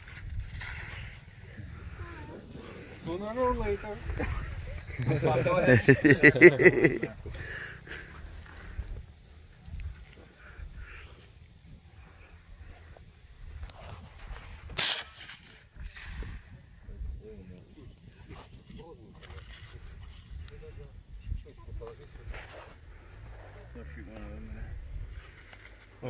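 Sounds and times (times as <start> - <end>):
wind rumble on microphone: 0.0 - 5.3, 7.1 - 14.8, 15.5 - 23.4, 24.4 - 25.5
rifle shot: 14.8 - 16.3.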